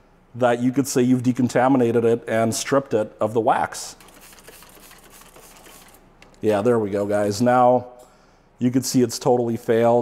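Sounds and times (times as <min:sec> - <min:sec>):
spray bottle misting hiss: 0:04.0 - 0:06.0.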